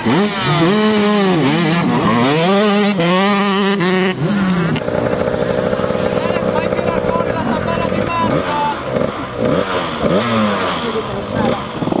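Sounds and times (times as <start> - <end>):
dirt bike engines revving: 0.0 - 12.0.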